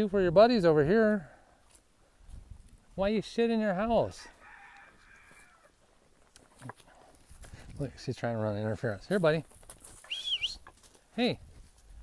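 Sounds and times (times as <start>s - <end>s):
faint animal call: 4.4s - 5.7s.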